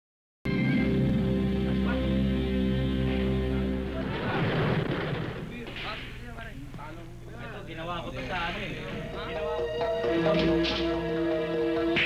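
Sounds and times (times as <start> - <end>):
people's voices: 0.5 - 12.0
gunshot blast: 4.1 - 6.2.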